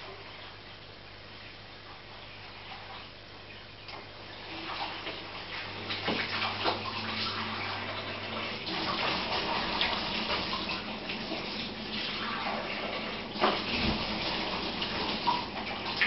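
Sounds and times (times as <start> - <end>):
aquarium water bubbling: 0.0 - 16.0
steady low hum: 0.0 - 16.0.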